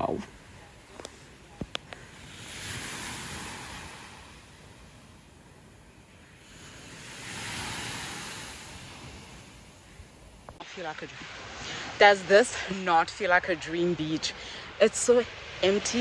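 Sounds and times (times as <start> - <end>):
small waves breaking on beach: 0.0 - 16.0.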